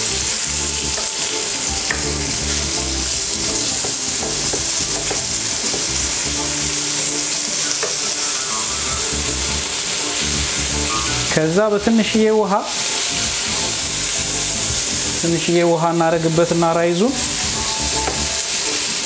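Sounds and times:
chicken sizzling in a pan: 0:00.0 - 0:19.0
utensil clicking against pan: 0:03.3 - 0:06.2.

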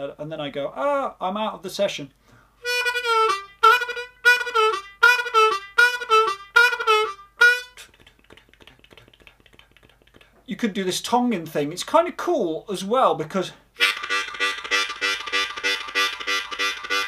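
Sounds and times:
harmonica note bending: 0:02.6 - 0:08.0, 0:13.8 - 0:17.0.

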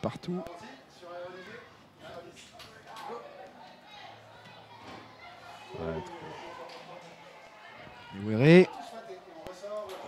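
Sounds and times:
football ground background noise: 0:00.0 - 0:10.0.

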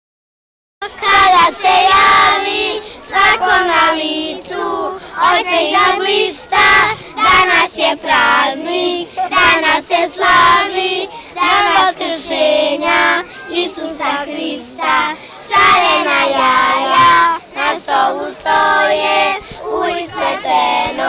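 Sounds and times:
children singing in unison: 0:00.8 - 0:21.0.

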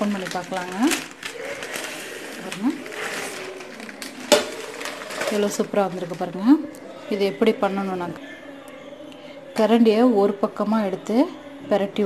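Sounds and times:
paper rustling: 0:00.0 - 0:06.4.

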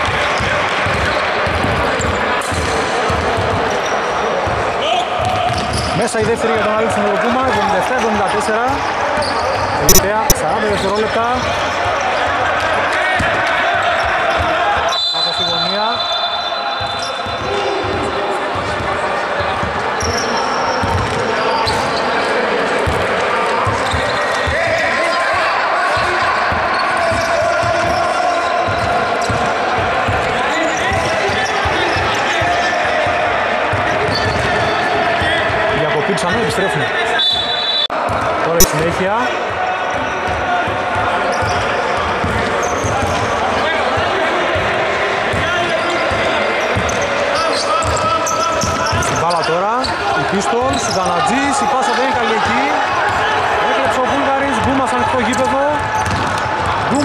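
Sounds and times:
players' voices: 0:00.0 - 0:57.0
referee's whistle: 0:09.2 - 0:11.0, 0:14.8 - 0:18.2, 0:37.1 - 0:38.0
basketball bouncing on hardwood: 0:20.8 - 0:21.2, 0:55.9 - 0:56.8.

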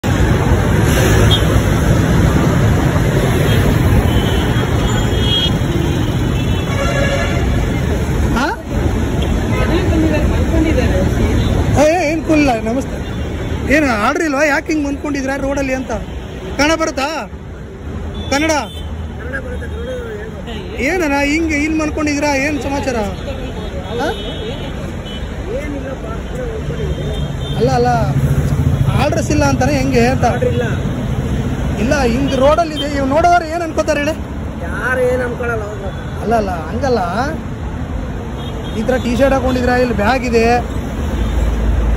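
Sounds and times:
road traffic rumble: 0:00.0 - 0:41.9
men talking: 0:07.0 - 0:41.1.

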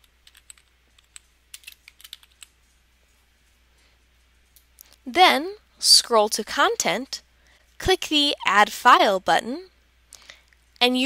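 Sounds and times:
computer keyboard typing: 0:00.1 - 0:02.5.

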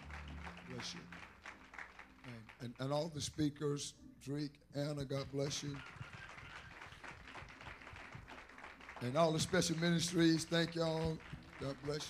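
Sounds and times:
faint scattered clapping: 0:00.0 - 0:03.5, 0:05.2 - 0:12.0.

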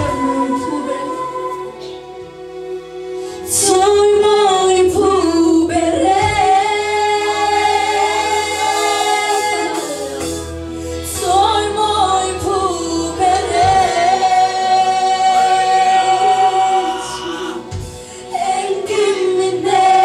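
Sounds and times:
women singing into microphones: 0:00.0 - 0:02.3, 0:03.4 - 0:20.0.

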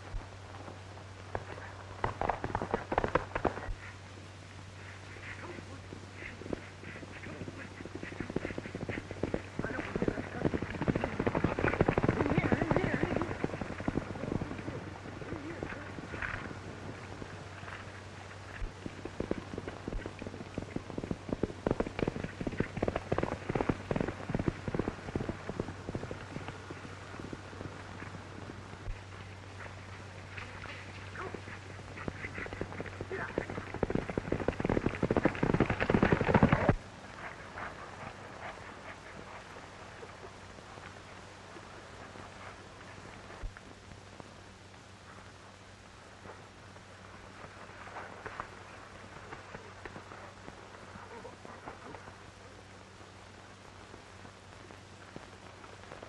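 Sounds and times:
horses galloping: 0:00.0 - 0:56.0
low hum: 0:00.0 - 0:56.0.

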